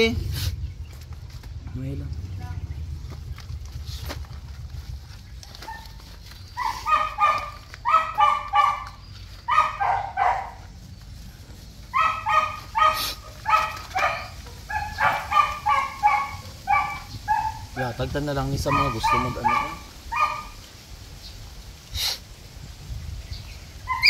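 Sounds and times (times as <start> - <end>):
puppy yelping and crying: 5.6 - 10.6, 11.9 - 17.9, 18.6 - 20.6.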